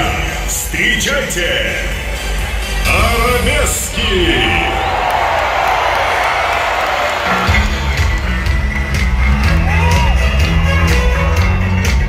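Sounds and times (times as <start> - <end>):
large crowd cheering: 2.4 - 12.0
disco bass and drum beat: 7.1 - 12.0.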